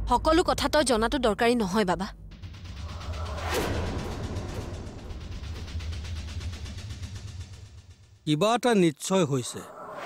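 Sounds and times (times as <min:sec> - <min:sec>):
low rumbling drone: 0:02.1 - 0:08.2.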